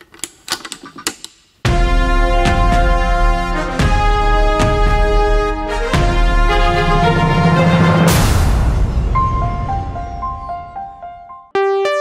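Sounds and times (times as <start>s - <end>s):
instrumental music with deep bass: 1.7s - 12.0s.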